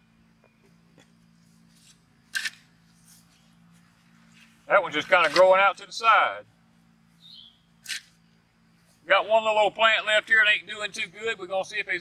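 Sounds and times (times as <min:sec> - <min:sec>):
faint steady hum: 0:00.0 - 0:12.0
sharp scrape of digging fork: 0:01.7 - 0:03.4, 0:07.8 - 0:08.2.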